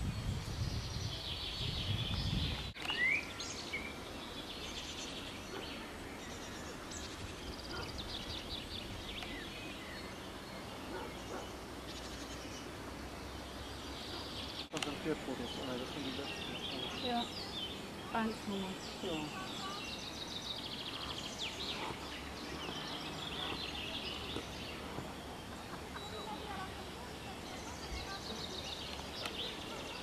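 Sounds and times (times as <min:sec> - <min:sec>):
birds chirping and singing: 0:00.0 - 0:30.0.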